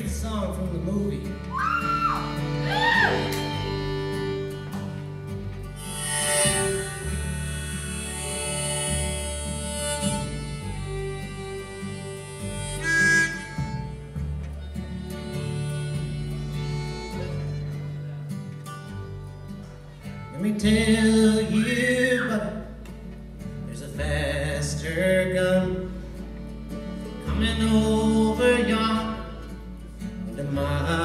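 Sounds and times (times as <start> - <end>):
fiddle melody: 0.0 - 31.0
mandolin: 0.0 - 31.0
strummed acoustic guitar: 0.0 - 31.0
upright bass: 0.0 - 31.0.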